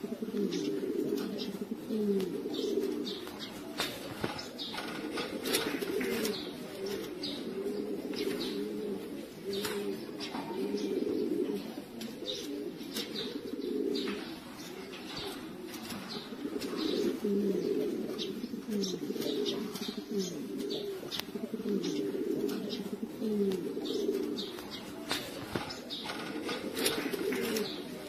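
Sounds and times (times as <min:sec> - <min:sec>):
pigeons cooing: 0:00.0 - 0:28.0.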